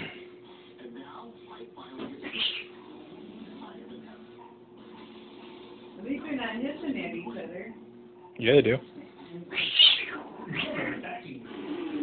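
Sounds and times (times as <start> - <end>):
cat meowing: 9.5 - 10.9.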